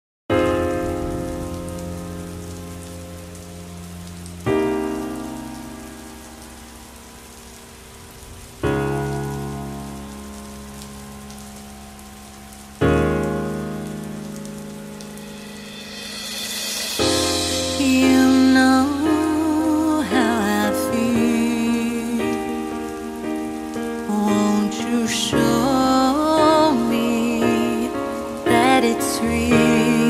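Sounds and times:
rain hissing: 0.3s - 30.0s
soft piano chords: 0.3s - 30.0s
rising swell: 15.0s - 19.2s.

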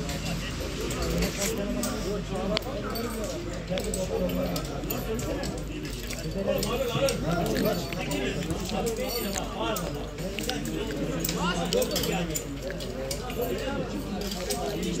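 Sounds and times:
players calling and talking: 0.0s - 15.0s.

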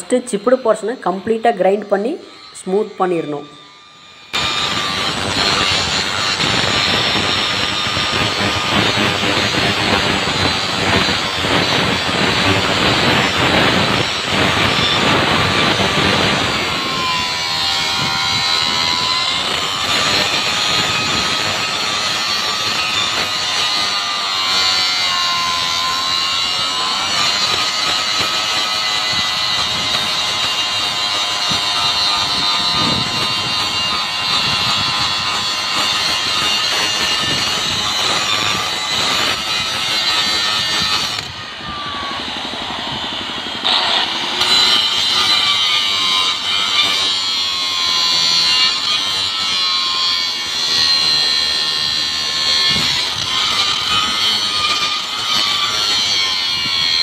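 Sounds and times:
angle grinder grinding steel: 0.0s - 57.0s.

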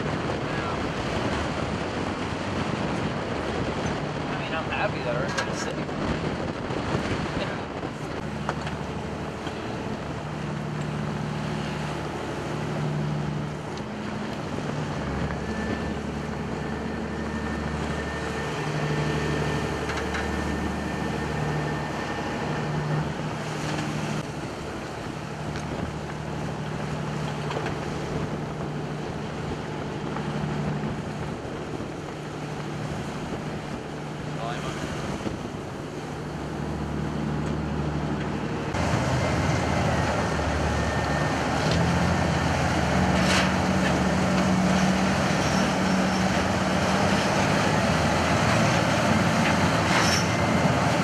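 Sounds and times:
boat engines running: 0.0s - 51.0s
wind buffeting microphone: 0.0s - 51.0s.

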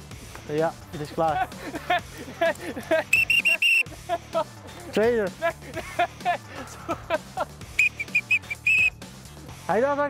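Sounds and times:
referee's whistle blasts: 3.1s - 3.9s, 7.8s - 8.9s.

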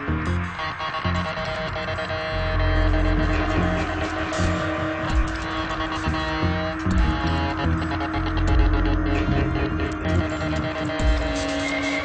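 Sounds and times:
pulsing deep bass: 0.0s - 1.7s, 2.3s - 12.0s
electronic drone: 0.0s - 12.0s.

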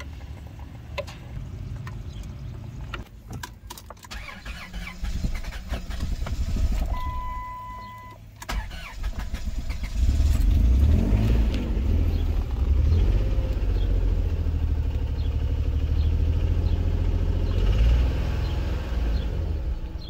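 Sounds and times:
car engine starting and idling: 0.0s - 20.0s.

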